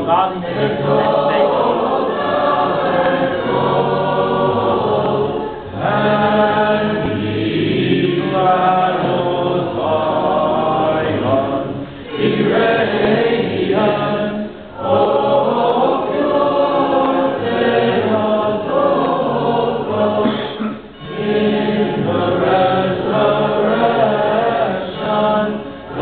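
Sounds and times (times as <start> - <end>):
choir singing chant a cappella: 0.0 - 26.0.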